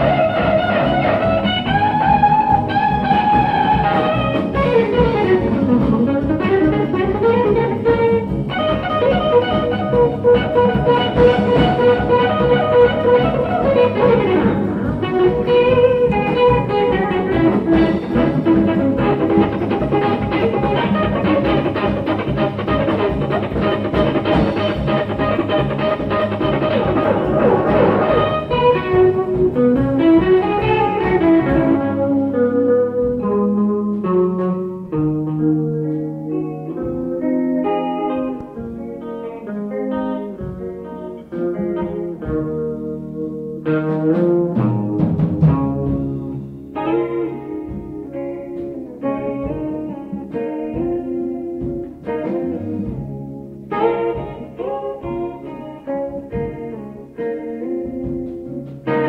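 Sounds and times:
bass: 0.0s - 59.0s
drums: 0.0s - 59.0s
electric guitar lead: 0.0s - 59.0s.

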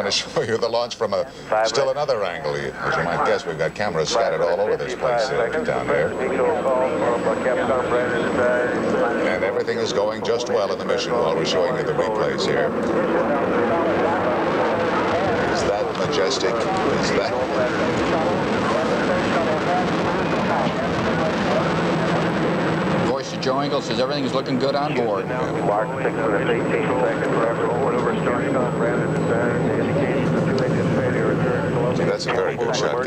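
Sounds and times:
indistinct voices: 1.3s - 33.0s
loud rocket engine roar: 2.8s - 33.0s.

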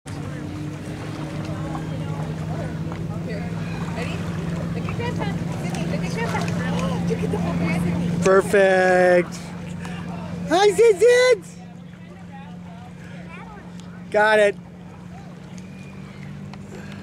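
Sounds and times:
faint distant voices: 0.1s - 17.0s
low motor hum: 0.1s - 17.0s.

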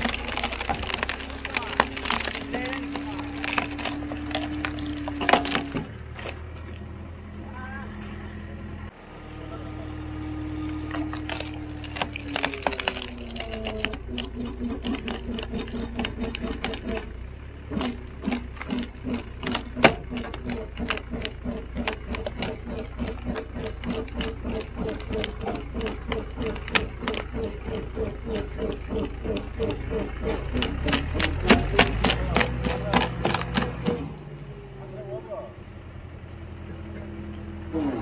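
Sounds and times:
wood cracking and splintering: 0.0s - 6.8s, 10.8s - 34.2s
engine hum with pulsing drone: 0.0s - 38.0s.

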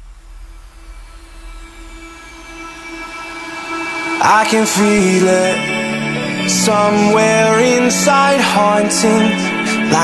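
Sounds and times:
held synth pad: 0.0s - 10.0s
noise swell: 0.0s - 10.0s.

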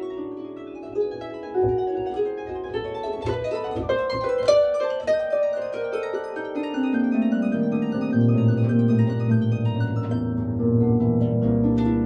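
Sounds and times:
harp plucked notes: 0.0s - 12.0s.

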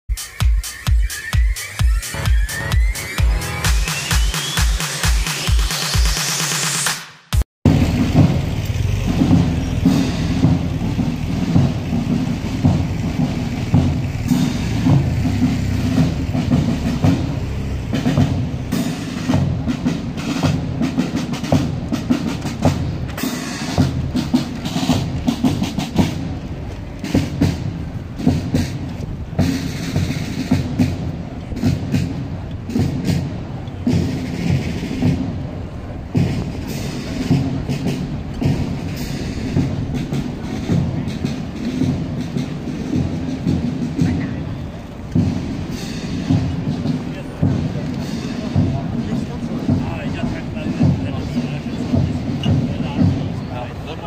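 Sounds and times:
bass drum beat: 0.1s - 6.5s, 7.3s - 54.0s
brass chords: 1.8s - 11.6s.

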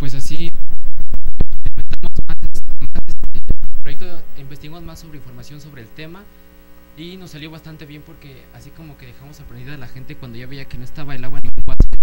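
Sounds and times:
rapid stuttering microphone clicks: 0.0s - 5.4s, 9.8s - 12.0s
person speaking: 1.6s - 12.0s.

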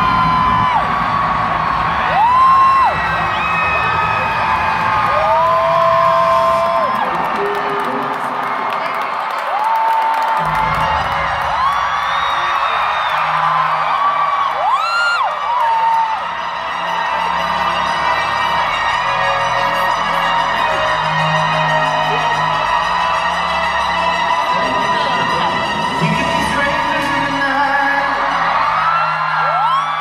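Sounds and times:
arena crowd cheering and screaming: 0.0s - 30.0s
fans whooping: 0.0s - 30.0s.

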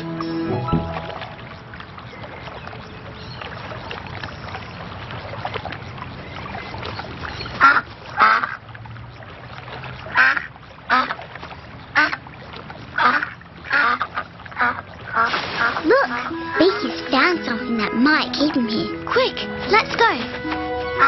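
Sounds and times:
duck quacking: 13.0s - 21.0s.

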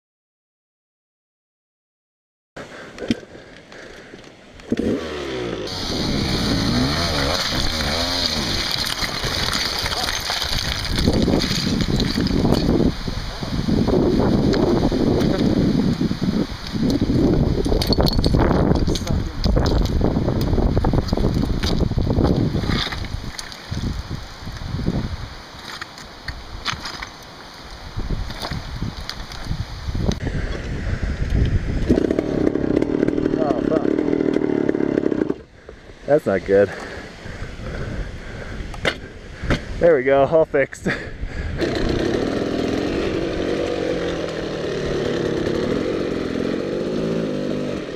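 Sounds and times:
dirt bike engine revving: 4.7s - 10.0s, 31.8s - 35.5s, 41.6s - 47.9s.

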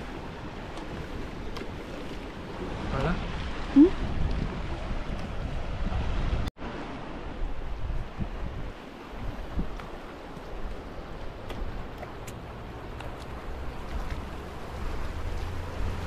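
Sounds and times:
wind buffeting microphone: 0.0s - 6.5s, 7.1s - 16.0s.

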